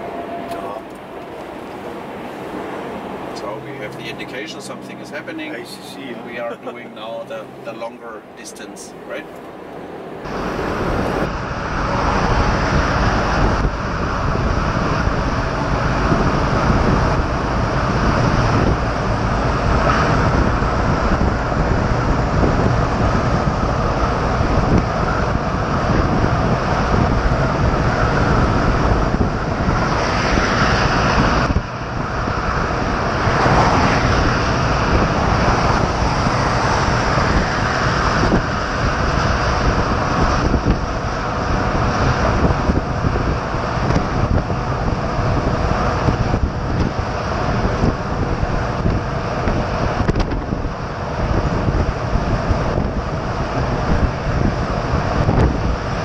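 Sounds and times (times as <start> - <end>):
truck road and wind noise: 0.0 - 56.0.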